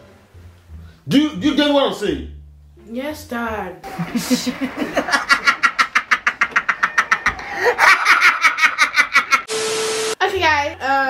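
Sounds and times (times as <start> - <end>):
man laughing hard: 4.1 - 9.5.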